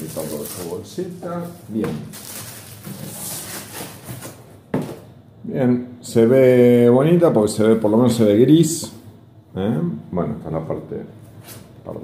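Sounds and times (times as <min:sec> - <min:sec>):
packaging rustling: 0:00.0 - 0:04.5.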